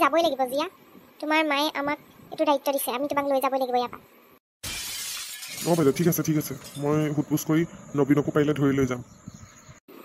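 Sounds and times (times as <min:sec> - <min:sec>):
glass shattering: 0:04.6 - 0:07.2.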